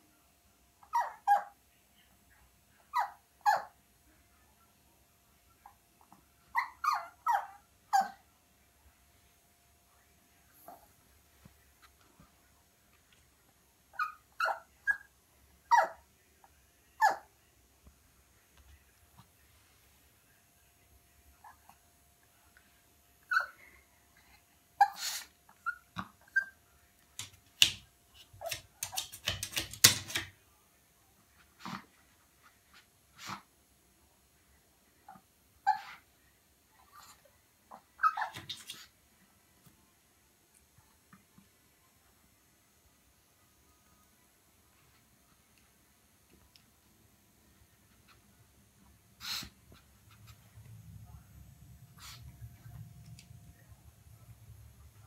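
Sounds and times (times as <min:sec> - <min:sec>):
dog whining high-pitched: 0:00.8 - 0:01.6, 0:06.5 - 0:08.2, 0:37.7 - 0:38.6
puppy yip: 0:00.8 - 0:01.6, 0:02.9 - 0:03.8, 0:06.5 - 0:08.2, 0:13.9 - 0:15.1, 0:15.7 - 0:16.0, 0:17.0 - 0:17.3, 0:23.3 - 0:23.6, 0:24.8 - 0:26.6, 0:35.1 - 0:36.0, 0:37.7 - 0:38.9.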